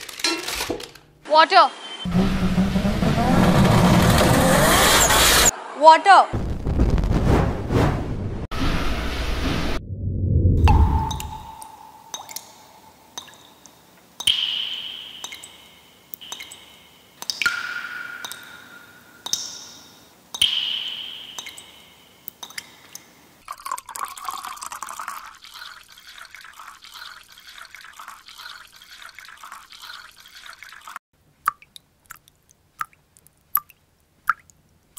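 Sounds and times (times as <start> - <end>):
water trickling: 10.6 - 19.4, 23.4 - 34.6
water drops plinking into water: 10.6 - 23.0, 31.4 - 34.6.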